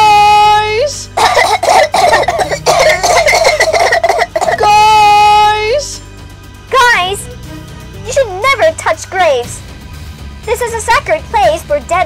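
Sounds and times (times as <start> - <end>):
person coughing and spluttering: 1.2 - 4.8.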